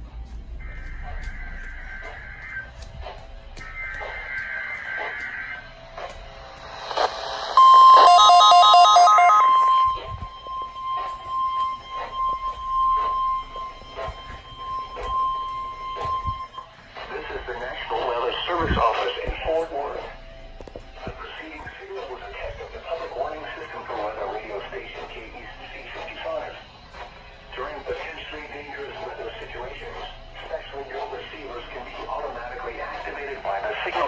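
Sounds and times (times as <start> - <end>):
steady high tone: 6.6 - 26.7
pulsing alert tones: 7.6 - 16.7.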